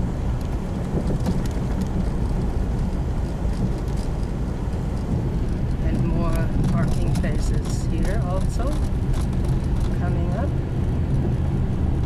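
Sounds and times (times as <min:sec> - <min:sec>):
car engine and tyres rumbling: 0:00.0 - 0:12.0.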